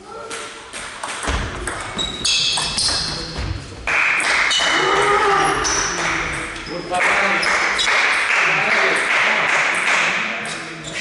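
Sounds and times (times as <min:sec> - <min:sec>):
shoes squeaking on floor: 0:01.6 - 0:03.8, 0:04.4 - 0:08.0, 0:10.4 - 0:11.0.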